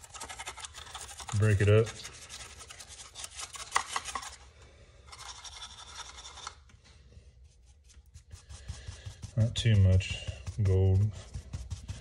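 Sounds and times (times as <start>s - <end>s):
bristle brush scrubbing hard surface: 0.0s - 4.4s, 7.2s - 12.0s.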